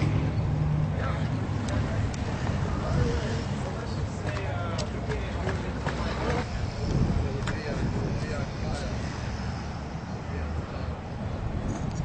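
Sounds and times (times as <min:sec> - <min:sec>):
steady low rumble: 0:00.0 - 0:12.0
indistinct talking: 0:00.9 - 0:11.2.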